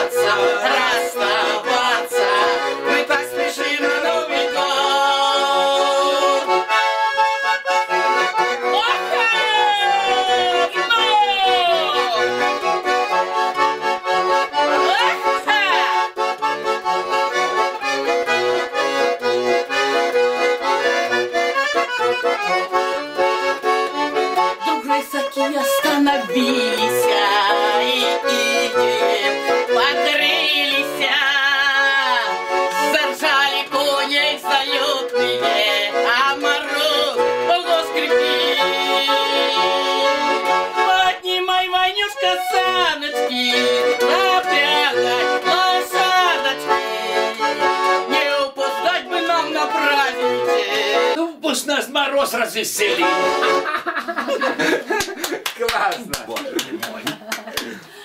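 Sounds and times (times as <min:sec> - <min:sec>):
woman singing: 0:00.0 - 0:06.5, 0:08.7 - 0:12.6, 0:14.8 - 0:16.1, 0:24.6 - 0:51.2
accordion playing folk tune: 0:00.0 - 0:55.5.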